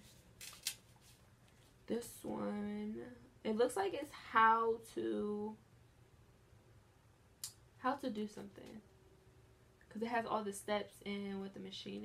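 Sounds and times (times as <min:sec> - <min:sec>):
paper sticker sheet rustling: 0:00.0 - 0:01.7
person speaking: 0:01.9 - 0:05.6, 0:07.8 - 0:08.9.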